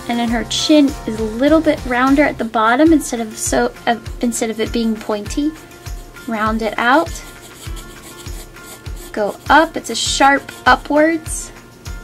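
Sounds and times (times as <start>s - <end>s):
background music with beat: 0.0s - 12.0s
pencil scratching on paper: 5.2s - 11.0s.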